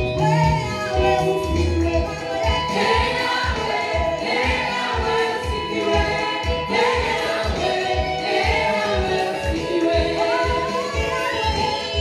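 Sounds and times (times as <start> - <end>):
backing music with steady beat: 0.0 - 12.0
woman singing into microphone: 0.0 - 12.0
backing singers: 2.6 - 12.0.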